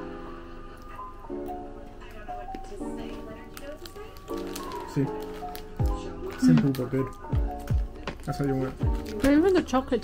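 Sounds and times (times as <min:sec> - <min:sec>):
lo-fi background music: 0:00.0 - 0:10.0.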